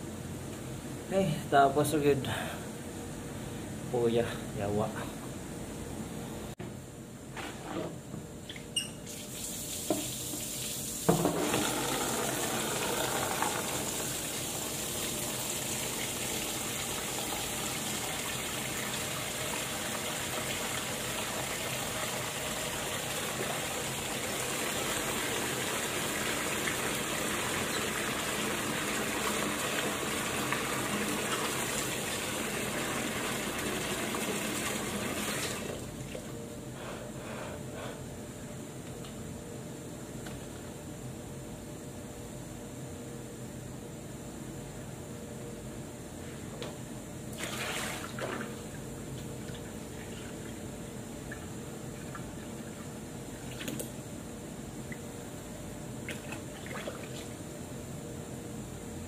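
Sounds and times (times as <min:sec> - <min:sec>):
tap water running into sink: 0:09.1 - 0:35.8.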